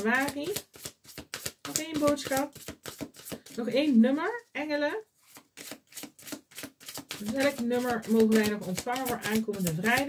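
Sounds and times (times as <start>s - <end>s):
cards being shuffled: 0.0s - 4.0s, 5.2s - 10.0s.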